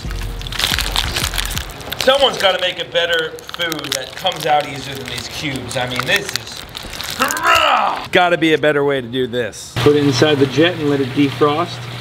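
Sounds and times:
faint music: 0:00.0 - 0:07.1
plastic blister pack crinkling: 0:00.0 - 0:08.1.

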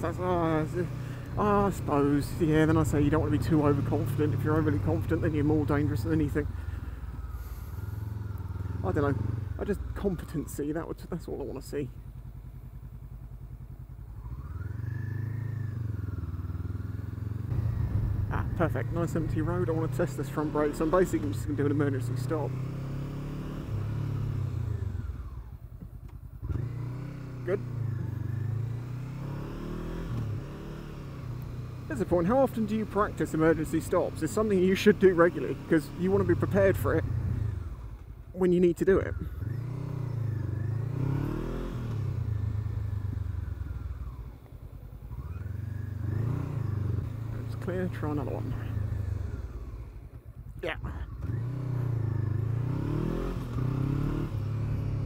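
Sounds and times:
motorcycle engine: 0:00.0 - 0:55.0.

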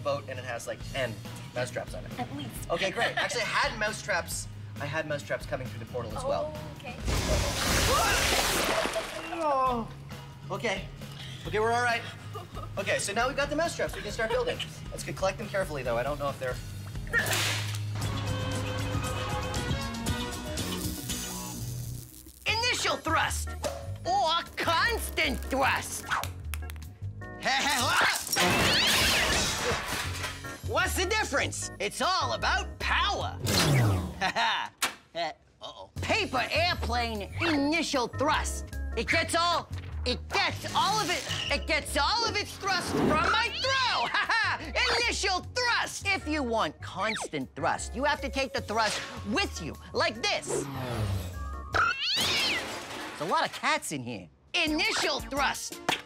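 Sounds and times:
background music: 0:00.0 - 0:34.7, 0:35.4 - 0:56.0.

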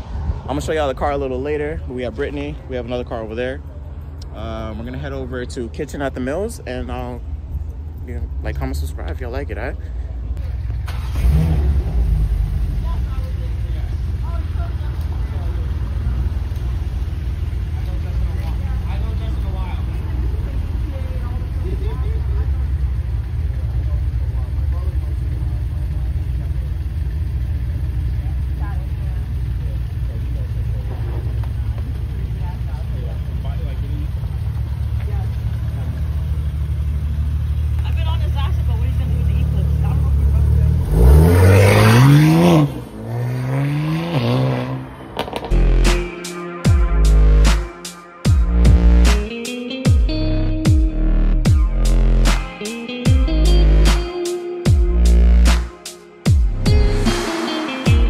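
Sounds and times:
car engine idling: 0:00.6 - 0:43.7
engine rev blips: 0:38.1 - 0:49.3.

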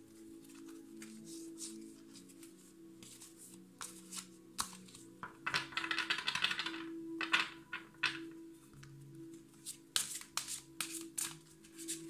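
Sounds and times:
soft background music: 0:00.0 - 0:12.0
cards being shuffled: 0:00.1 - 0:08.2, 0:09.6 - 0:12.0
deck tapped on glass table: 0:05.2 - 0:08.3.

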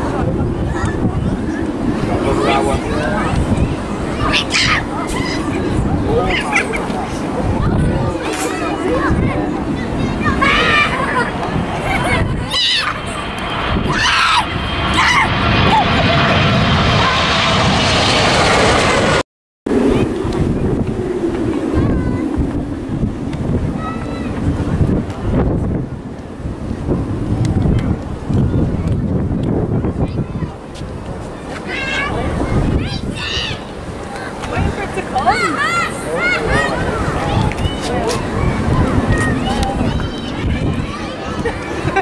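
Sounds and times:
airliner engine noise: 0:00.0 - 0:42.0
jet engine rushing and whining: 0:00.0 - 0:42.0
wind rumble on microphone: 0:00.0 - 0:42.0.

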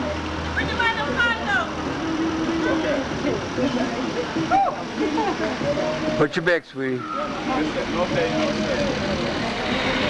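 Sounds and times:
minibus engine drone: 0:00.0 - 0:06.3, 0:07.0 - 0:10.0
faint voices: 0:00.0 - 0:10.0.

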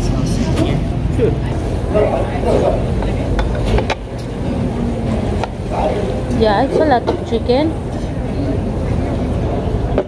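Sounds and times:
murmured voices: 0:00.0 - 0:10.0.

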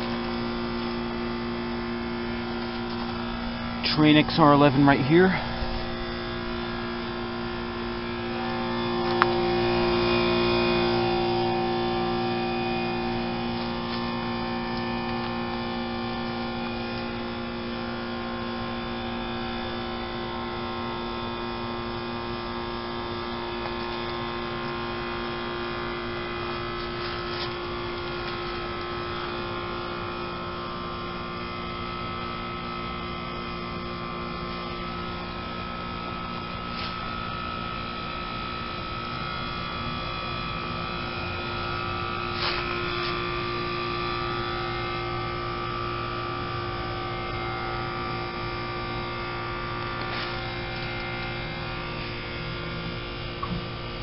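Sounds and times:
heat pump humming: 0:00.0 - 0:54.0.

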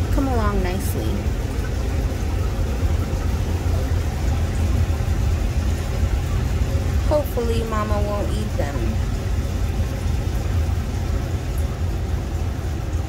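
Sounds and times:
cooler humming and rumbling: 0:00.0 - 0:13.0.

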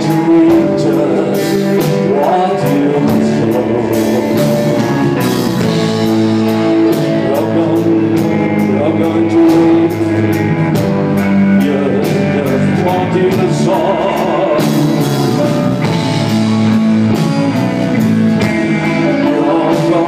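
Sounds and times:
guitar sustained notes: 0:00.0 - 0:20.0
rock band playing live: 0:00.0 - 0:20.0.

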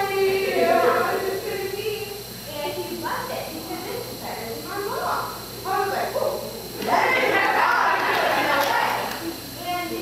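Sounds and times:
people's voices in large room: 0:00.0 - 0:10.0.

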